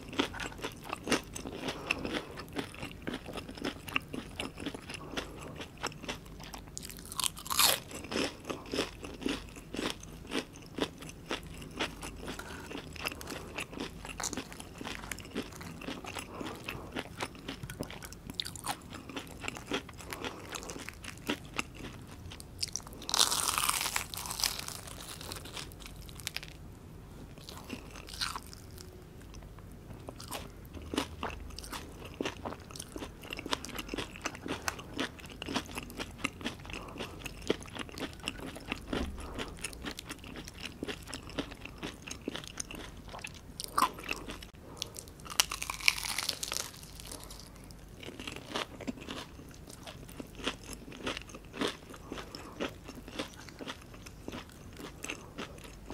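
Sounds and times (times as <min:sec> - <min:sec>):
crunchy chewing: 0:00.0 - 0:26.6, 0:27.3 - 0:55.9.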